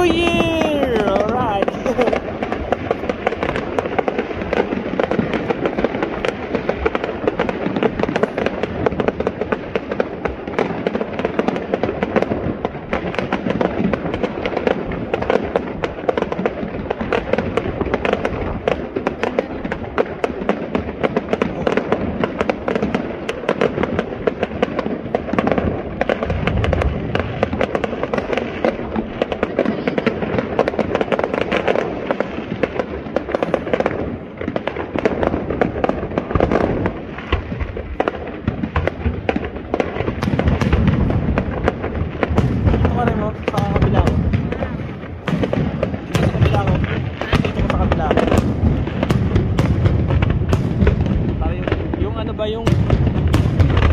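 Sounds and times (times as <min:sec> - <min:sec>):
fireworks bursting and crackling: 0:00.0 - 0:53.9.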